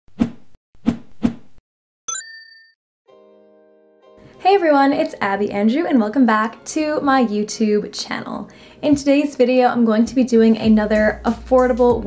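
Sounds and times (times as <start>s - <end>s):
rising run of chime tones: 2.1s - 2.8s
soft held chord background music: 3.1s - 12.0s.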